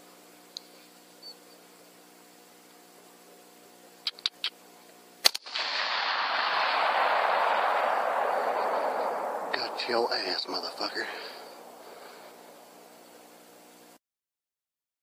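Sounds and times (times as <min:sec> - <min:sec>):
faint steady hum: 0:00.0 - 0:14.0
quick sharp clicks: 0:05.2 - 0:05.8
rifle shot: 0:05.2 - 0:13.2
loud rushing hiss: 0:05.4 - 0:13.3.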